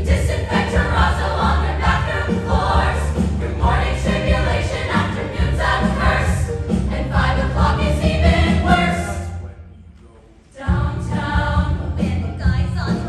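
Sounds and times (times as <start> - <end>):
chorus singing show tune: 0.0 - 9.4, 10.5 - 13.0
instrumental accompaniment: 0.0 - 9.7.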